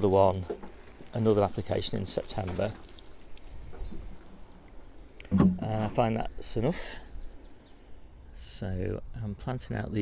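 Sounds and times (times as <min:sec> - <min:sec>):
low outdoor background noise: 0:00.0 - 0:10.0
faint bird chirps: 0:02.8 - 0:09.3.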